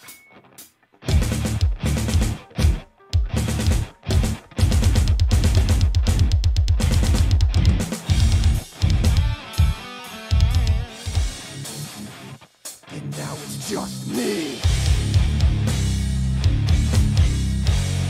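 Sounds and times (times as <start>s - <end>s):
metal band playing: 0.0s - 18.0s.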